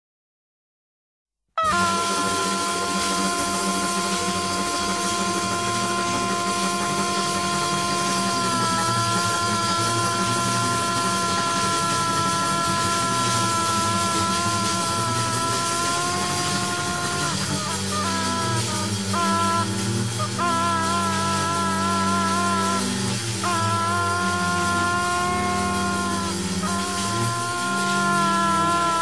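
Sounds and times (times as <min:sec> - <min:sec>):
reed instrument holding a note: 0:01.6 - 0:29.0.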